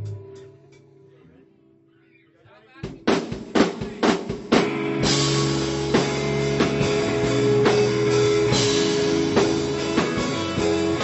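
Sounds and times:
live rock band playing: 0:00.0 - 0:01.0, 0:02.9 - 0:11.0
drum hits: 0:02.9 - 0:11.0.

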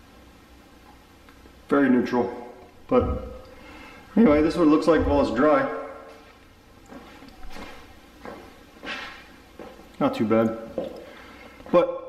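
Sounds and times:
soft footsteps on concrete: 0:04.2 - 0:09.9.

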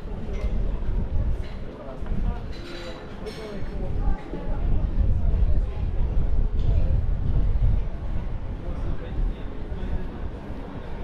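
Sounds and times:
wind buffeting microphone: 0:00.0 - 0:02.6, 0:03.5 - 0:11.0
faint voices: 0:00.0 - 0:11.0.

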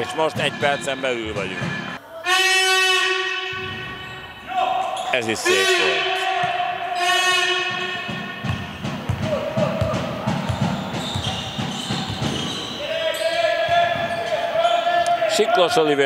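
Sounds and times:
high-pitched squeals: 0:00.0 - 0:15.2
basketball bouncing: 0:00.3 - 0:02.0, 0:06.3 - 0:12.8, 0:13.6 - 0:14.4.

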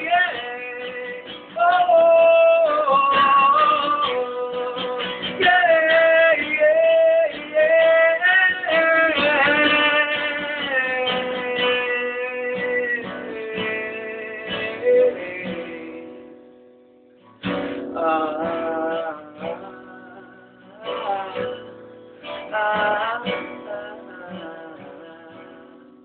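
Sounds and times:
guitar chords ringing and strummed: 0:00.0 - 0:26.0.

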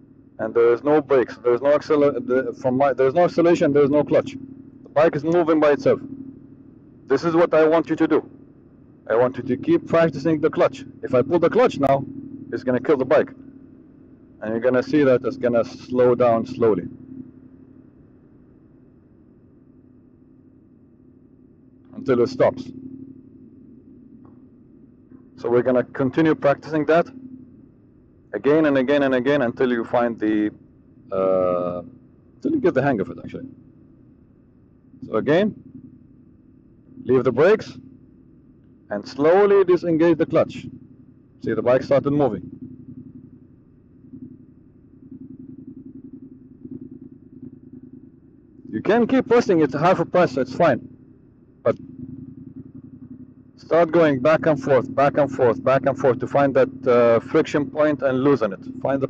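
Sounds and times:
motorcycle engine idling: 0:00.0 - 0:59.0.

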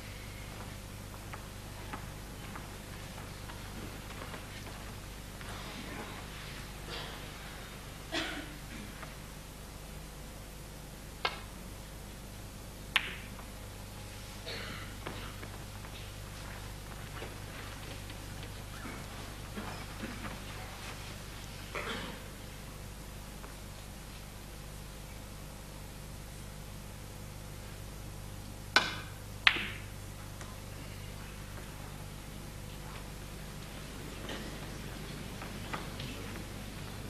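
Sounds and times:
balls colliding click: 0:11.2 - 0:11.5, 0:12.9 - 0:13.5, 0:28.7 - 0:30.5
cue striking ball click: 0:12.9 - 0:13.5, 0:28.7 - 0:29.9.

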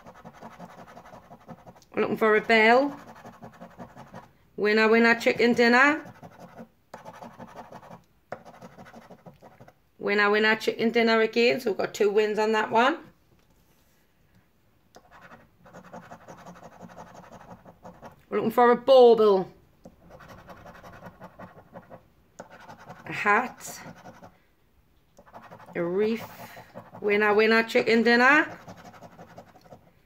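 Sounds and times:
coin scratching scratch card: 0:00.0 - 0:01.8, 0:02.4 - 0:04.3, 0:05.2 - 0:09.7, 0:15.0 - 0:18.2, 0:20.0 - 0:24.3, 0:25.2 - 0:27.1, 0:28.4 - 0:29.9.

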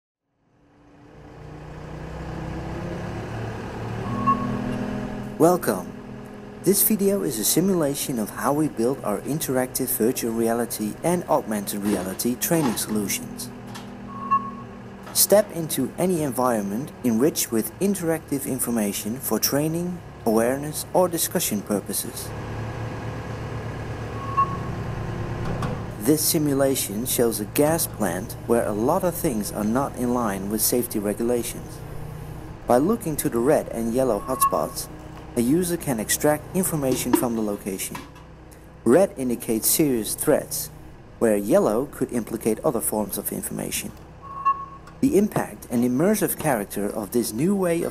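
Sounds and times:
engine idling: 0:00.4 - 0:47.9
short beep: 0:04.0 - 0:04.8, 0:14.1 - 0:14.7, 0:24.2 - 0:24.8, 0:34.2 - 0:34.8, 0:44.2 - 0:44.8.

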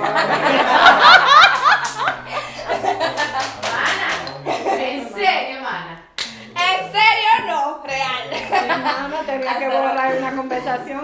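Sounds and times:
sharp hand clap: 0:01.3 - 0:02.2, 0:03.0 - 0:04.4, 0:06.2 - 0:06.5.

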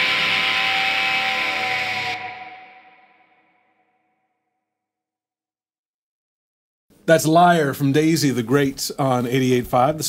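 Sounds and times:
distorted electric guitar chord: 0:00.0 - 0:03.6.

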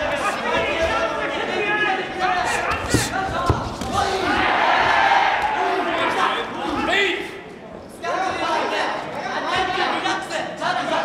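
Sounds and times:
people shouting: 0:00.0 - 0:06.9.

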